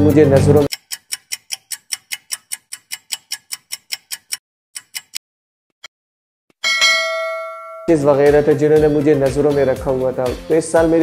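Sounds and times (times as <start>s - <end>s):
countdown timer ticking: 0.5s - 5.2s.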